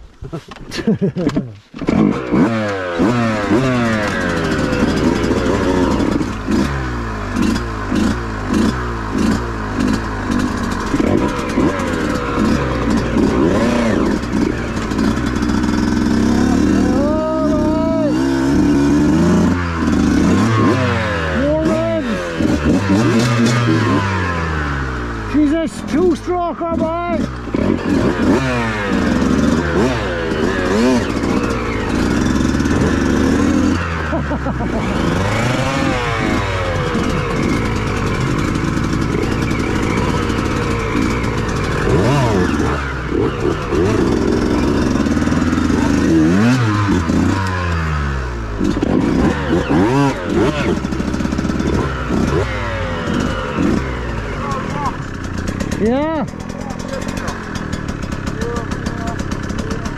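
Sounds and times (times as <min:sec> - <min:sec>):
two-stroke motorcycle engines revving: 0:00.7 - 0:59.9.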